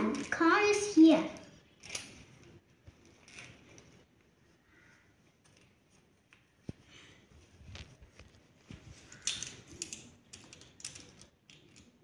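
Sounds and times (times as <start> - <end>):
plastic toys clicking and clattering: 0.0 - 4.0, 9.0 - 12.0.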